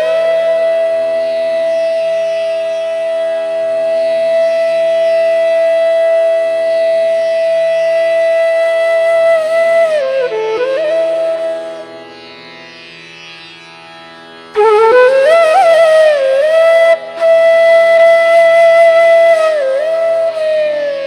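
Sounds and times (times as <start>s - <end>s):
bamboo flute long note: 0.0s - 12.1s, 14.5s - 21.0s.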